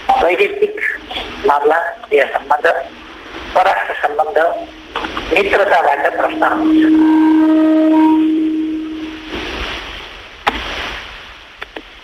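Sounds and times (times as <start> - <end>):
long horn-like tone: 4.5 - 9.9.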